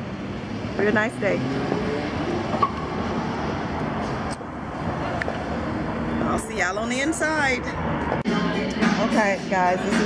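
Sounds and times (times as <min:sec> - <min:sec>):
city traffic passing cars: 0:00.0 - 0:10.0.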